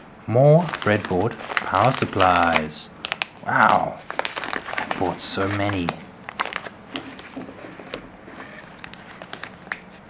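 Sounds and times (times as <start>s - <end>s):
plastic packaging crinkling: 0.5s - 10.0s.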